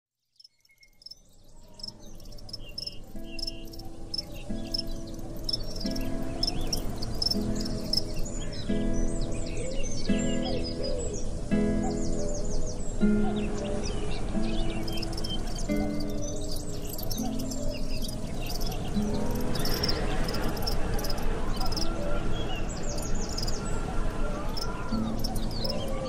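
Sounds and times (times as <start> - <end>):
birds chirping: 0.3 - 26.0
guitar music: 2.0 - 26.0.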